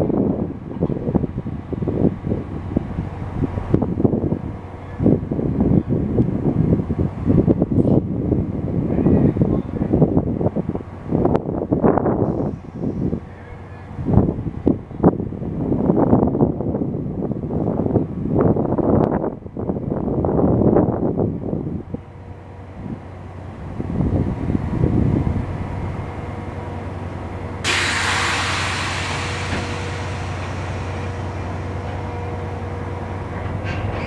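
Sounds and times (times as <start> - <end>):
air brakes hissing: 12.2 - 13.4, 27.6 - 34.0
train equipment humming: 21.3 - 34.0.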